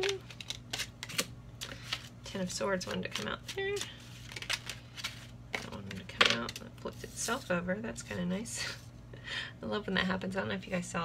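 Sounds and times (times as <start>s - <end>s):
cards shuffling: 0.0s - 7.2s.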